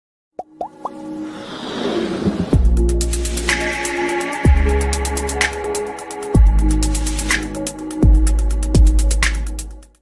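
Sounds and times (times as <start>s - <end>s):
rising electronic plops: 0.4s - 1.2s
music: 0.4s - 10.0s
electronic whoosh: 1.1s - 3.6s.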